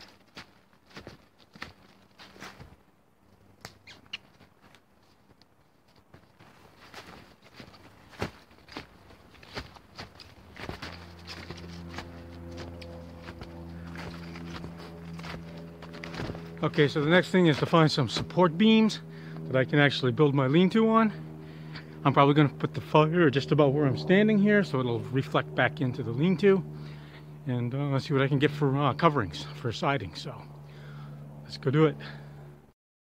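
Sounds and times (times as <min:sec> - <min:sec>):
snowshoe footsteps crunching snow: 0:00.0 - 0:02.8, 0:04.4 - 0:18.6
steady low pitched hum: 0:00.0 - 0:32.7.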